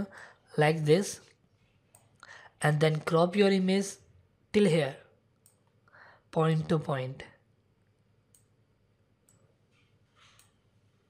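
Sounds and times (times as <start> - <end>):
faint breath: 0.1 - 0.5, 2.2 - 2.6, 5.9 - 6.3.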